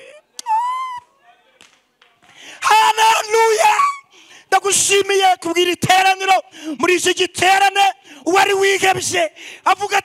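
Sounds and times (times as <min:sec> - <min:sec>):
man shouting preaching through speakers: 0:02.6 - 0:10.0.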